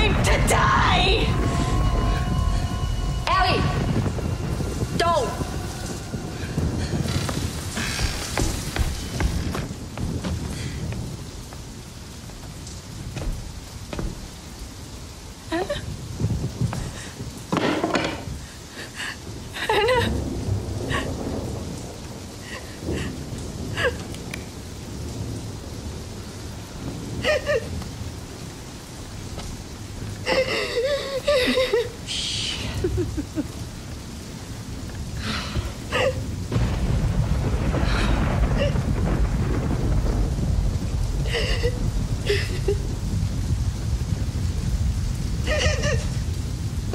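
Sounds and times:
steady rain: 0:00.0 - 0:46.9
thunder rumble: 0:00.0 - 0:46.9.

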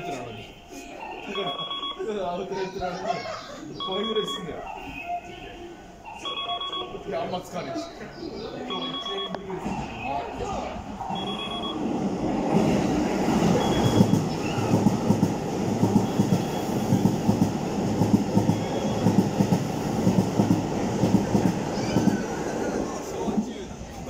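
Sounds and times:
electric train passing: 0:08.6 - 0:24.0.

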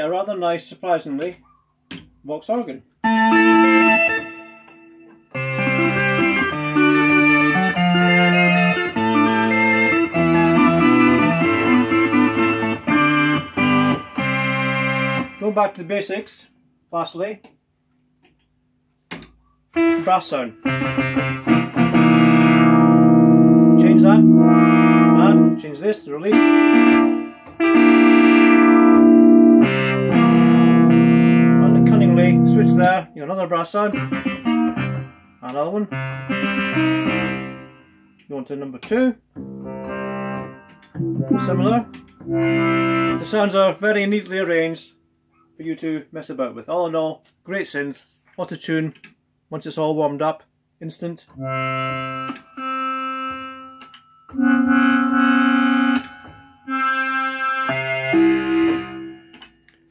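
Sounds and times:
synthesizer organ chords: 0:03.0 - 0:15.9, 0:19.7 - 0:44.9, 0:51.3 - 0:59.9.

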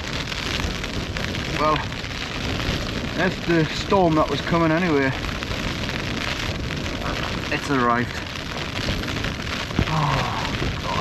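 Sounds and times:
rain battering tent fabric: 0:00.0 - 0:11.0.

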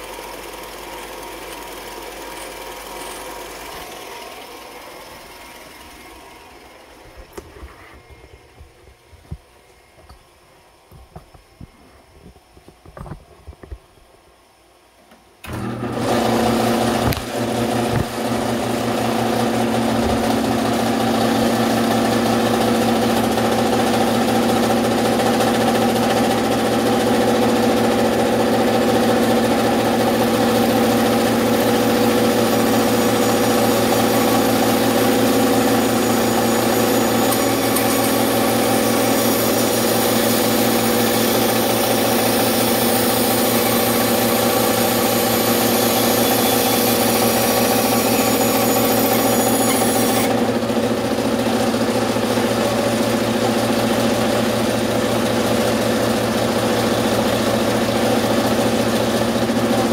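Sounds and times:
scroll saw motor hum: 0:00.0 - 0:10.1, 0:15.4 - 0:50.8.

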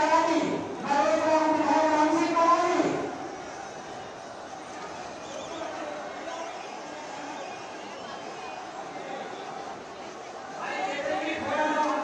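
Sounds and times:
man speaking loudly: 0:00.0 - 0:03.1, 0:10.6 - 0:12.0
crowd murmur: 0:00.6 - 0:12.0.

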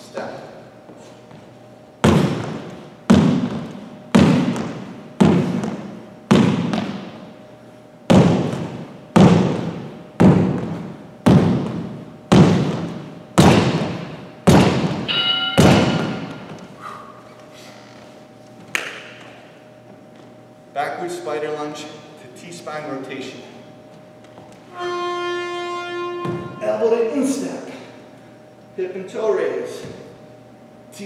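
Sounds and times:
sneaker footsteps on wooden floor: 0:00.8 - 0:07.2, 0:08.1 - 0:16.7, 0:26.2 - 0:26.6
shoe squeak: 0:15.1 - 0:18.2, 0:24.7 - 0:26.9.

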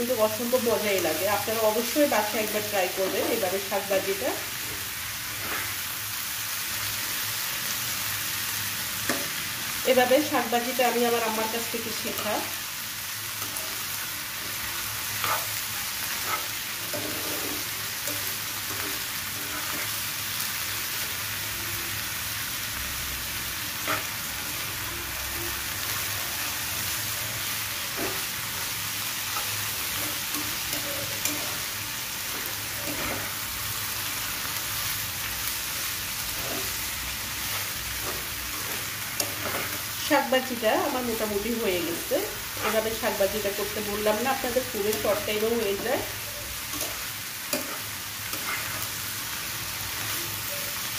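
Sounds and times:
greens sizzling in a frying pan: 0:00.0 - 0:50.9.

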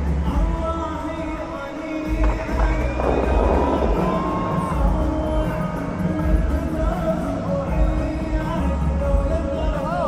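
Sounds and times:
song over outdoor sound system: 0:00.0 - 0:10.0
water jets whooshing: 0:02.2 - 0:06.0.

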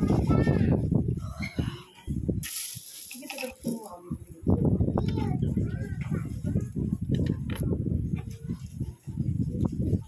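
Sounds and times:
glass beads rattling: 0:02.4 - 0:04.0.

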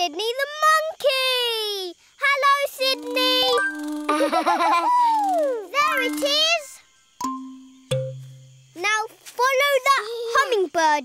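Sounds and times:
light cartoon music: 0:07.2 - 0:08.5.

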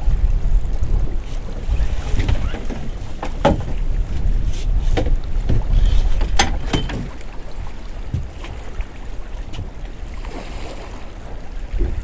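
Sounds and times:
sea water lapping around boat: 0:00.0 - 0:12.0
wind rumbling on microphone: 0:00.0 - 0:12.0.

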